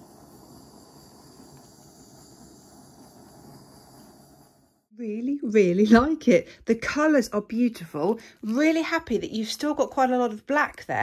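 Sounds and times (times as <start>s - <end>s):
butane torch hissing: 0.0s - 4.9s.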